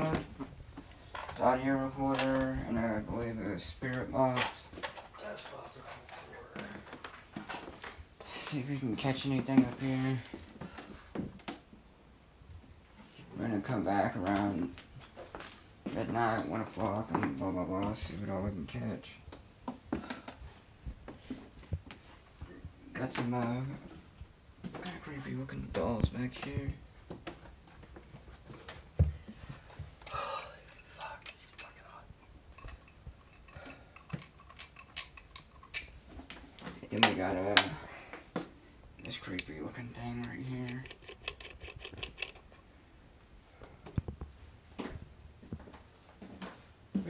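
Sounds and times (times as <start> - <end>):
footsteps in small room: 12.5 - 31.2, 43.4 - 47.0
handling clicks and rustles: 24.7 - 42.7.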